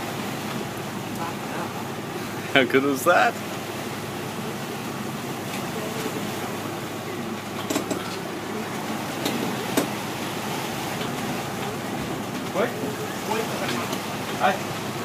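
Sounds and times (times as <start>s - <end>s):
boat engine running: 0.0s - 15.0s
wake water washing: 0.0s - 15.0s.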